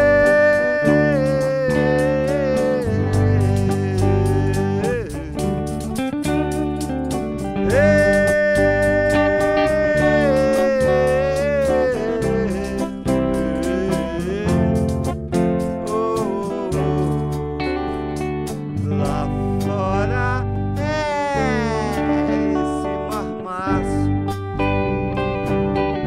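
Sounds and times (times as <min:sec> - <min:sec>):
tambourine beat: 0:00.0 - 0:24.8
bass guitar: 0:00.0 - 0:26.0
electric guitar lead notes: 0:00.0 - 0:26.0.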